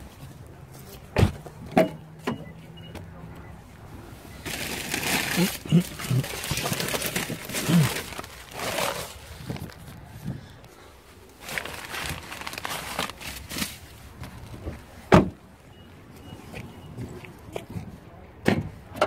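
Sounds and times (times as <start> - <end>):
rustling handling noise: 4.1 - 15.1
person coughing: 5.2 - 6.5, 7.6 - 8.1
car door clicks and knocks: 15.1 - 15.4.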